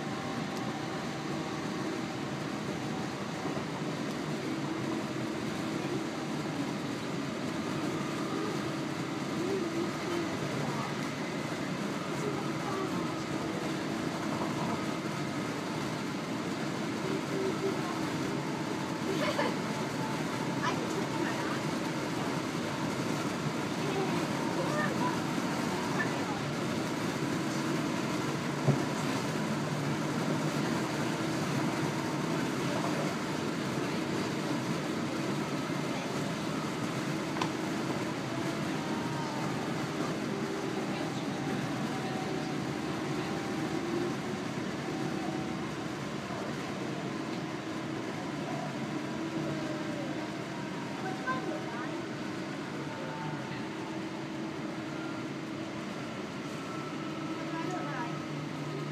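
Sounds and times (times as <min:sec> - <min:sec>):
train wheels rumbling on rails: 0:00.0 - 0:58.9.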